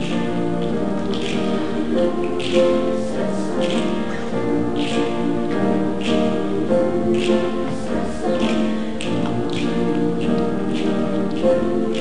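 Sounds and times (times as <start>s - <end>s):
choir singing in harmony: 0.0s - 12.0s
piano accompaniment: 0.0s - 12.0s.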